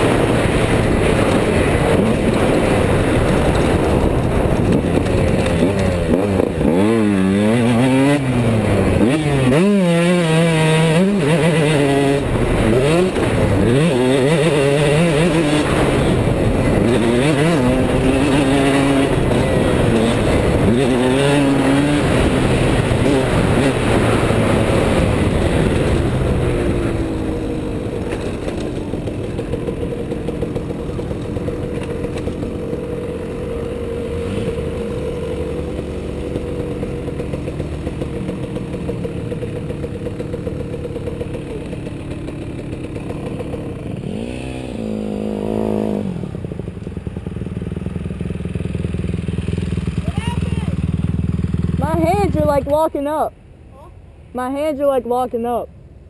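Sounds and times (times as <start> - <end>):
motocross bike engine revving: 0.0 - 46.7, 47.8 - 53.3.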